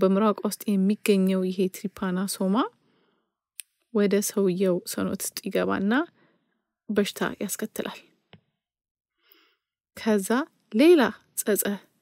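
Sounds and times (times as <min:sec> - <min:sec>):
soft breath: 0:02.8 - 0:03.4, 0:06.1 - 0:06.8, 0:09.1 - 0:09.8.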